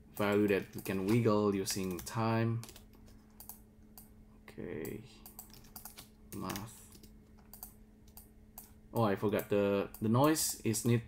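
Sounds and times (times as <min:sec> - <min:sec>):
keyboard and mouse clicks: 0:00.2 - 0:04.1, 0:04.8 - 0:08.8.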